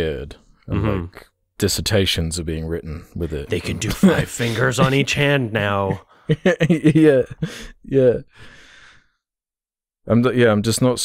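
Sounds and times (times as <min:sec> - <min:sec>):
man speaking: 0:00.0 - 0:08.3
man sighing: 0:07.4 - 0:09.0.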